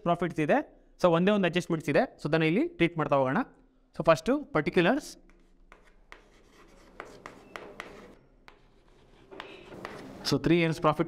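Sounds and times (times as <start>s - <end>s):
chalk scratching on blackboard: 5.3s - 10.3s.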